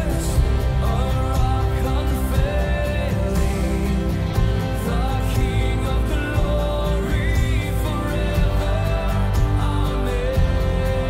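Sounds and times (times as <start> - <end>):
music with steady beat: 0.0 - 11.0.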